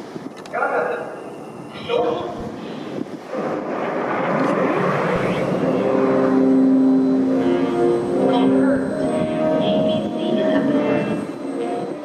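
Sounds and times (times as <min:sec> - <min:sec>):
loud rushing sound: 0:02.3 - 0:12.0
low sustained musical tones: 0:05.3 - 0:12.0.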